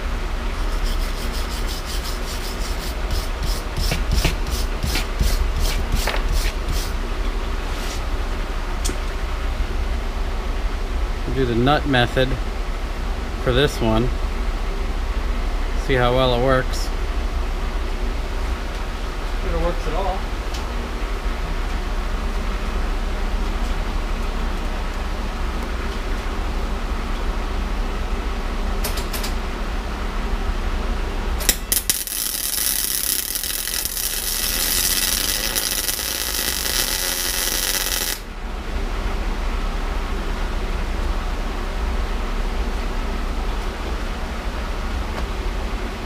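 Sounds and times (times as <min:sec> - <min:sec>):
arc welder crackling sizzle: 0:00.0 - 0:07.0, 0:31.3 - 0:38.4.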